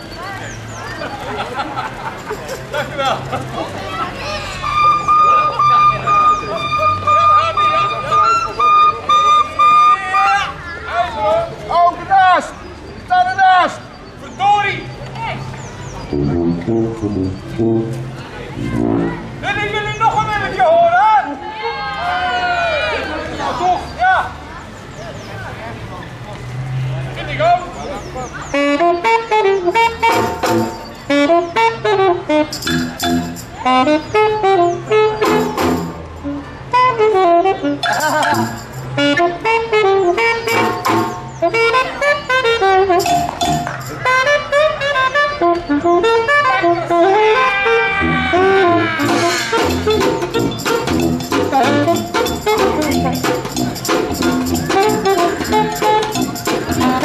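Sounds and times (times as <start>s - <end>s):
saxophone melody: 4.5s - 10.6s, 16.1s - 19.4s, 28.5s - 57.0s
low bass notes: 15.9s - 19.7s, 29.5s - 36.5s, 37.7s - 39.4s, 40.0s - 41.9s, 42.8s - 44.4s, 48.0s - 57.0s
drum beats: 29.8s - 30.9s, 32.6s - 33.6s, 35.2s - 36.0s, 40.5s - 41.3s, 43.0s - 44.0s, 49.0s - 57.0s
saxophone short high blasts: 37.8s - 41.8s.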